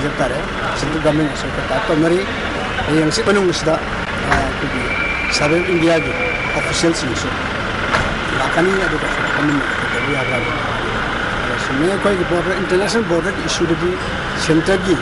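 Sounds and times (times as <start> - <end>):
man speaking: 0.0 - 7.4, 8.3 - 10.8, 11.4 - 15.0.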